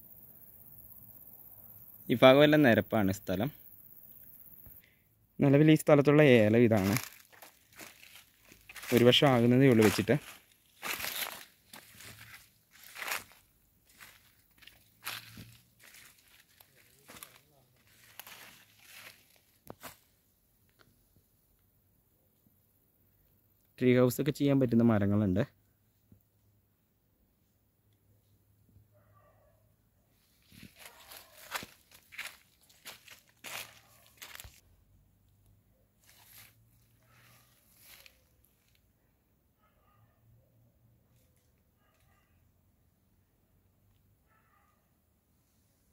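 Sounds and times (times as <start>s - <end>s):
footsteps crunching through dry leaves: 6.4s - 20.1s, 30.2s - 34.6s, 36.0s - 38.8s.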